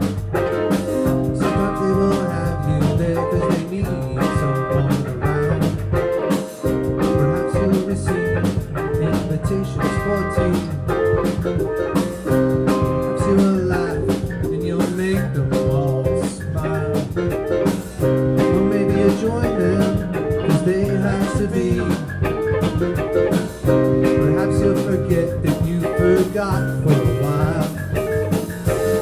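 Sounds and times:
bass guitar: 0:00.0 - 0:29.0
drum kit beats: 0:00.0 - 0:29.0
electric guitars: 0:00.0 - 0:29.0
keyboard: 0:00.0 - 0:29.0.

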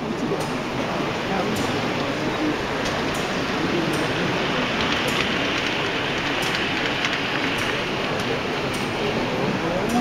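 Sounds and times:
busy exhibition hall noise: 0:00.0 - 0:10.0
model train running on track: 0:00.0 - 0:10.0.

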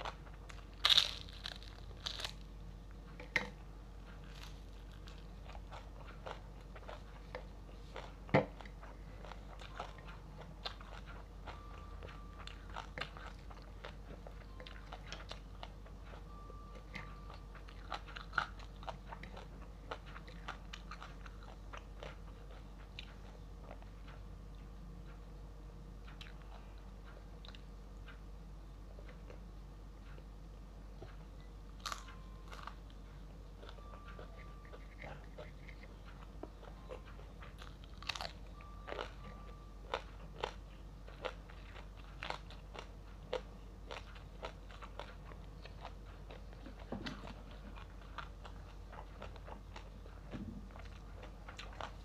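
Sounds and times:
person chewing crunchy food: 0:00.0 - 0:24.7, 0:31.0 - 0:52.0.

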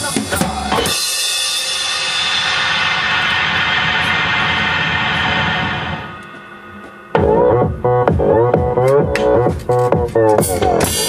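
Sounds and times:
acoustic drum kit: 0:00.0 - 0:03.4, 0:07.2 - 0:11.0
electronic dance backing track: 0:00.0 - 0:11.0
cymbal wash: 0:00.8 - 0:07.2.

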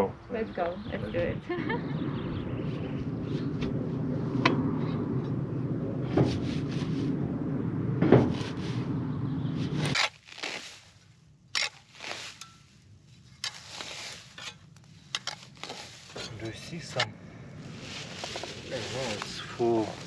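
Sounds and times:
steady low rumble: 0:00.0 - 0:20.0
spade scraping through roots and soil: 0:09.8 - 0:17.1, 0:17.7 - 0:20.0.

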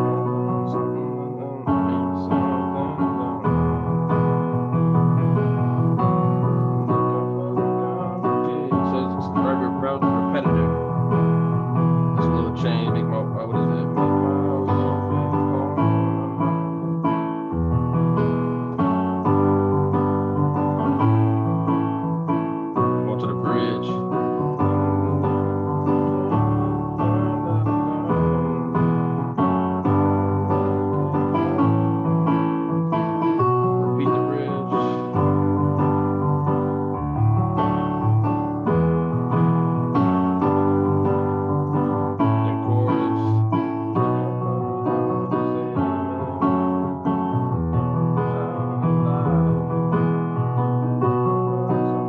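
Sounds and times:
piano block chords: 0:00.0 - 0:52.0.

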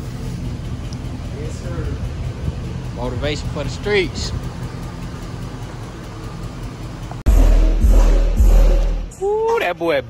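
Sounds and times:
steady low hum: 0:00.0 - 0:09.4
heavy bass music from subwoofers: 0:07.3 - 0:09.2.

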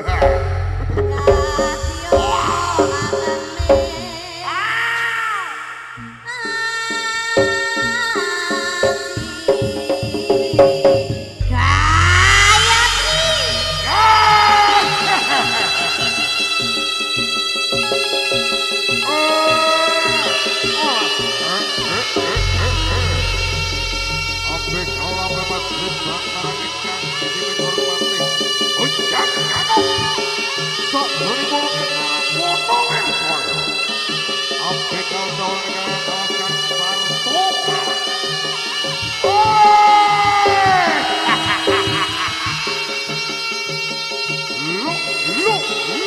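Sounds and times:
low struck metal notes: 0:00.0 - 0:04.2, 0:10.7 - 0:14.6, 0:22.2 - 0:27.9
reedy wind melody with pitch bends: 0:00.0 - 0:04.7, 0:06.3 - 0:46.0
held high note: 0:11.4 - 0:16.7, 0:19.1 - 0:32.6.

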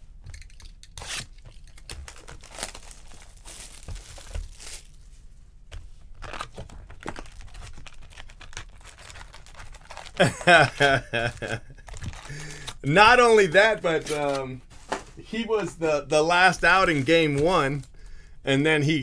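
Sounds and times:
packaging tearing and crinkling: 0:00.4 - 0:05.0, 0:06.2 - 0:12.8, 0:14.0 - 0:14.5.

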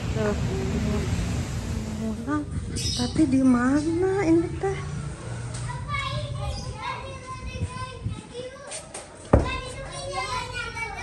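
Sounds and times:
children talking and calling out: 0:02.1 - 0:11.0.

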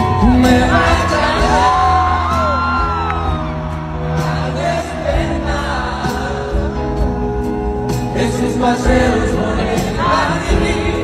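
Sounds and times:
man singing into microphone: 0:00.0 - 0:02.9, 0:03.9 - 0:07.0, 0:07.9 - 0:11.0
crowd whooping: 0:00.0 - 0:04.8
live band playing: 0:00.0 - 0:11.0.

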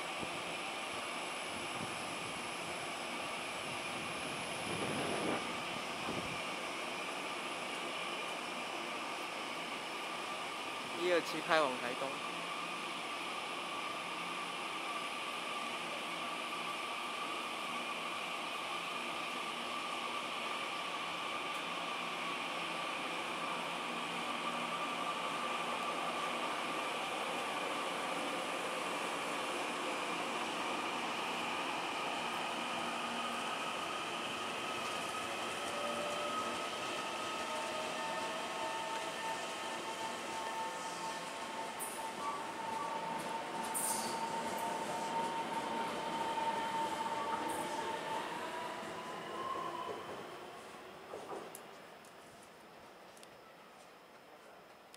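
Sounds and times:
electric train running: 0:21.5 - 0:48.8.

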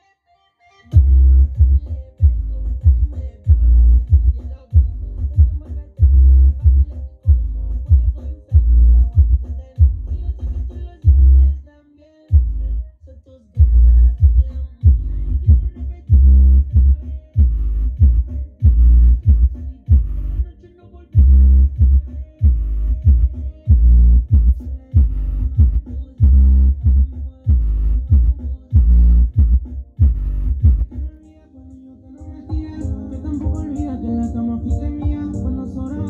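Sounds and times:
hip-hop music with deep bass: 0:00.0 - 0:36.0.

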